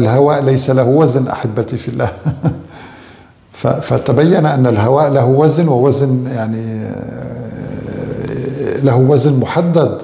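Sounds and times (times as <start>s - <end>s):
man speaking: 0.0s - 2.6s, 3.5s - 10.0s
man's rough hesitation sound: 6.5s - 9.0s.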